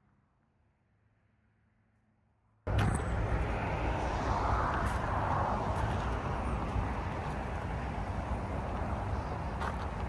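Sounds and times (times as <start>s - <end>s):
outdoor background rumble: 0.0s - 10.0s.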